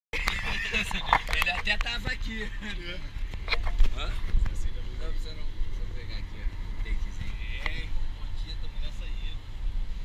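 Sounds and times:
men talking: 0.2s - 9.6s
car road rumble: 0.2s - 10.0s.

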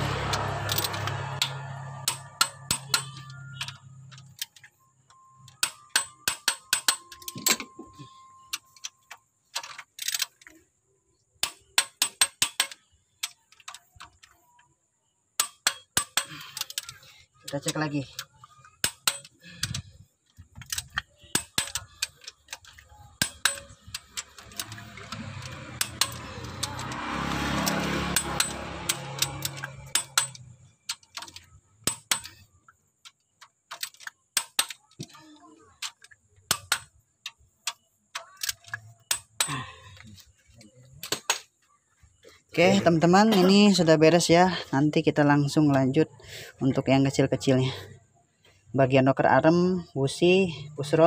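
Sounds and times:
torque wrench metal clicks: 5.4s - 10.6s, 11.4s - 14.4s, 15.4s - 40.0s.

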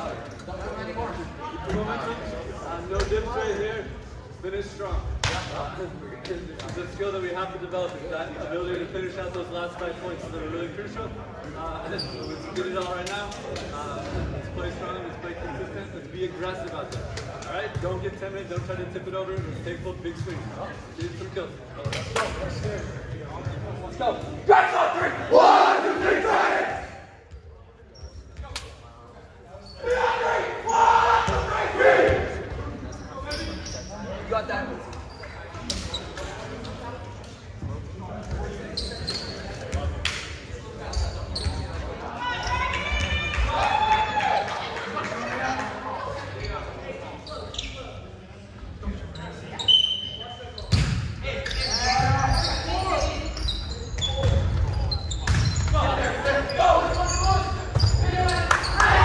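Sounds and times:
players calling out: 24.3s - 27.1s.

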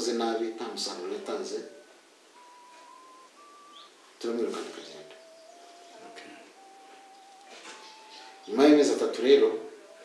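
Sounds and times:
faint whistle-like notes: 0.0s - 10.0s.

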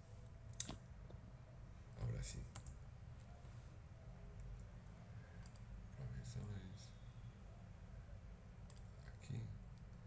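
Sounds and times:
computer mouse click: 5.4s - 5.7s, 8.7s - 8.9s.

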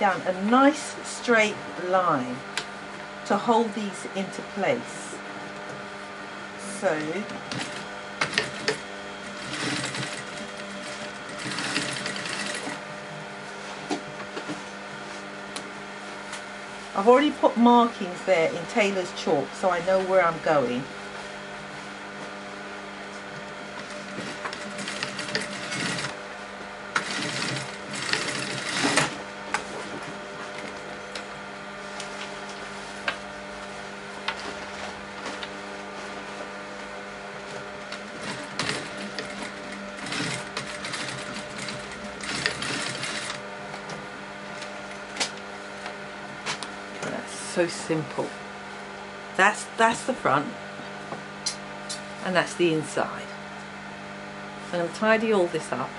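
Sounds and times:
steady hum: 0.0s - 55.9s
sewing machine stitching: 7.0s - 12.9s, 23.8s - 26.2s, 26.9s - 29.2s, 37.9s - 43.4s.

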